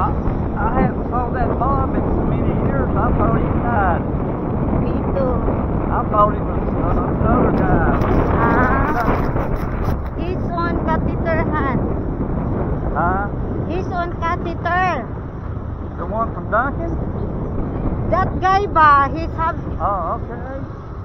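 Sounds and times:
motorcycle engine running: 0:00.0 - 0:21.0
wind buffeting microphone: 0:00.0 - 0:21.0
muffled talk: 0:04.8 - 0:11.9.

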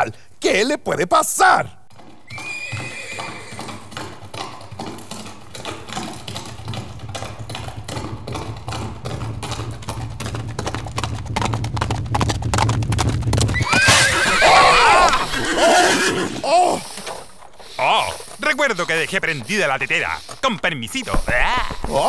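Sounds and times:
horse hoofbeats galloping: 0:01.2 - 0:22.0
low rumble: 0:09.9 - 0:13.6.

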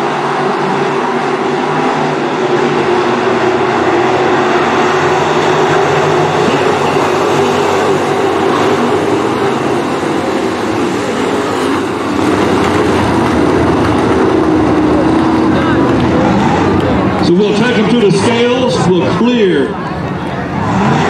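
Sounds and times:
stock car engines racing: 0:00.0 - 0:21.0.

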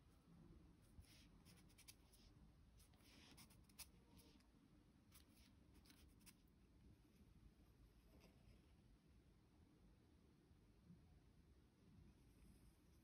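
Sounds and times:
paintbrush dabbing on paper: 0:00.7 - 0:06.4.

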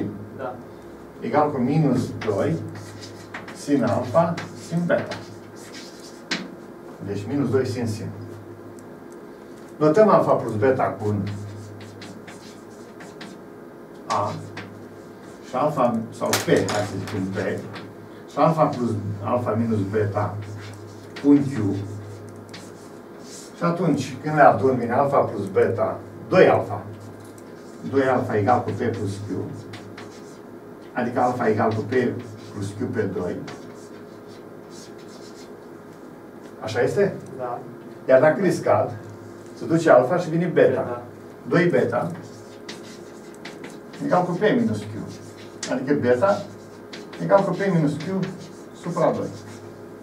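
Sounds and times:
chalk scratching on blackboard: 0:02.0 - 0:06.7, 0:11.0 - 0:13.4, 0:14.1 - 0:15.6, 0:20.1 - 0:23.8, 0:27.0 - 0:30.4, 0:31.1 - 0:36.1, 0:41.8 - 0:49.8.

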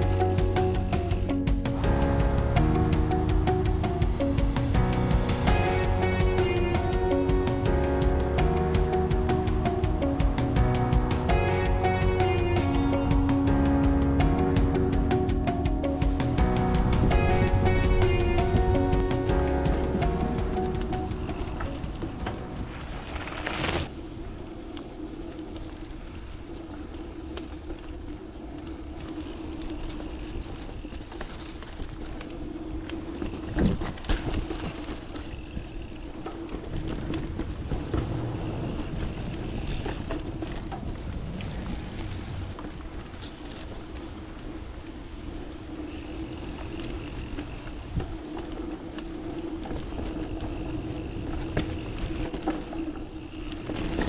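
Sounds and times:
bike rattling: 0:00.0 - 0:54.0
bike tyre rumble on dirt: 0:00.0 - 0:54.0.

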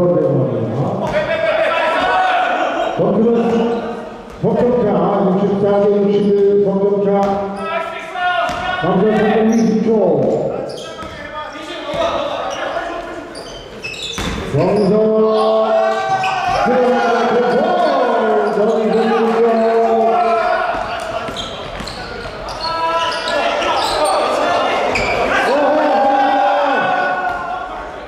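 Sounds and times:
voices calling out echoing: 0:00.0 - 0:28.0
basketball bouncing on wooden floor: 0:08.5 - 0:09.4, 0:11.0 - 0:11.2, 0:14.1 - 0:14.5.

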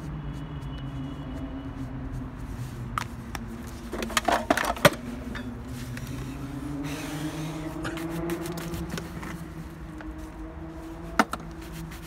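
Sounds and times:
shoe brush buffing leather: 0:00.0 - 0:03.9, 0:05.7 - 0:12.0.

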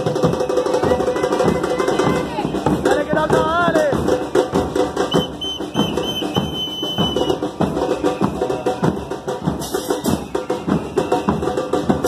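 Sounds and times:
bass drums with cymbals: 0:00.0 - 0:12.0
whistle blasts: 0:05.0 - 0:08.5, 0:09.9 - 0:11.7.

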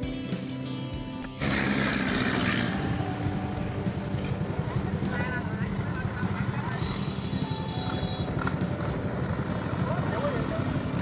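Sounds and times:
background music: 0:00.0 - 0:11.0
engine running with rough pulse: 0:01.2 - 0:11.0
faint voices: 0:03.9 - 0:11.0.

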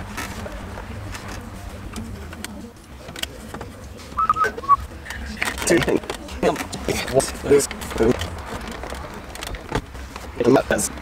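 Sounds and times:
short high chirps: 0:04.2 - 0:04.8.

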